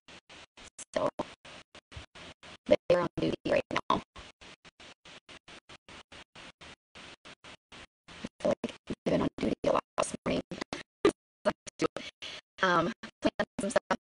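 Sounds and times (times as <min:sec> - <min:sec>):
woman speaking in choppy fragments: 0:00.8 - 0:01.3, 0:02.7 - 0:04.0, 0:08.3 - 0:10.8, 0:11.5 - 0:14.0.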